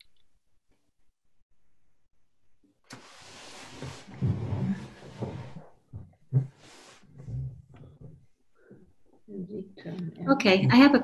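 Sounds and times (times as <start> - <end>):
rustling rumbling microphone noise: 3.6 - 8.2.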